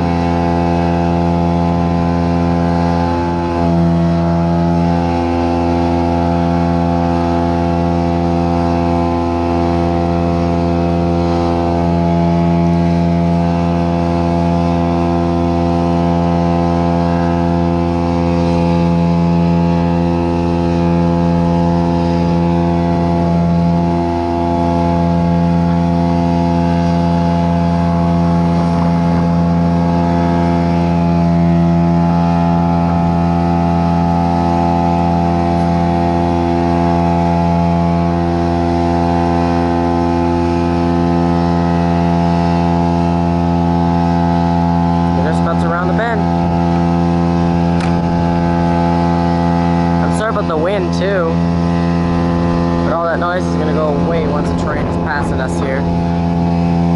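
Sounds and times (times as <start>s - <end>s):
engine droning steadily: 0.0s - 56.9s.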